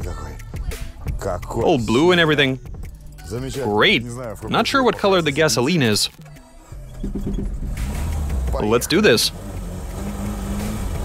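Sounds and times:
car engine cranking and starting: 4.8 - 11.0
engine running with low rumble: 6.7 - 11.0.

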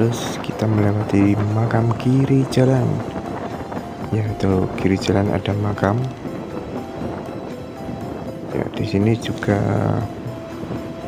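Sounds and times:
faint background music: 0.0 - 11.0
wind: 0.0 - 11.0.

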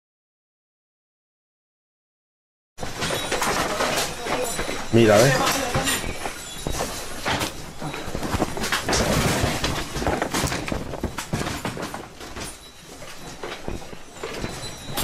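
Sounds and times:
building shaking: 2.8 - 15.0
objects rattling and knocking: 2.8 - 15.0.

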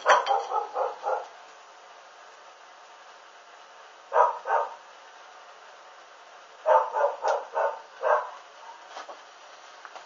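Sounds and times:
dog barking: 0.0 - 1.3, 4.1 - 4.8, 6.6 - 8.8.

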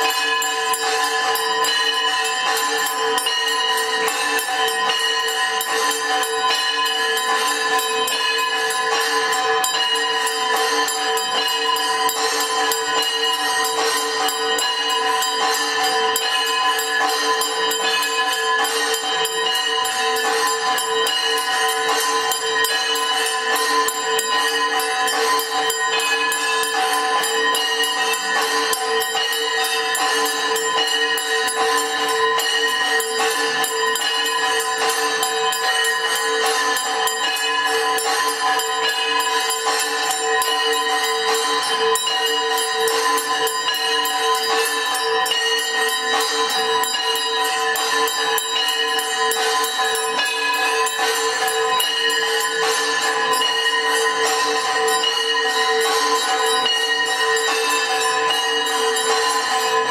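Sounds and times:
bells ringing rapidly: 0.0 - 59.9
jingling metal percussion: 0.0 - 59.9.

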